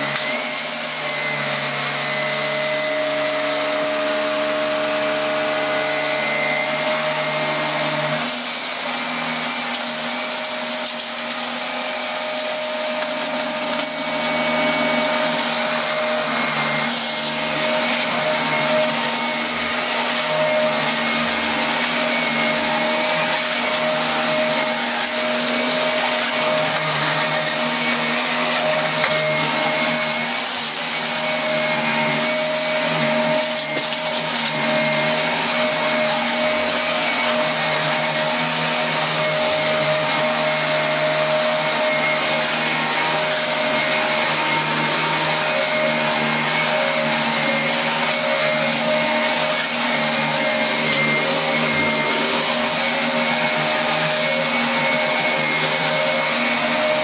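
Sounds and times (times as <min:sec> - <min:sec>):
upright vacuum cleaner whining: 0:00.0 - 0:57.0.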